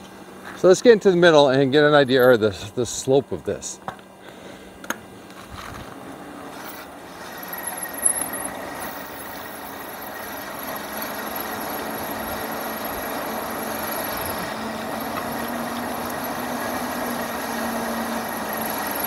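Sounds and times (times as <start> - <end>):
wind: 0.0 - 19.0
tyre noise on asphalt: 3.8 - 19.0.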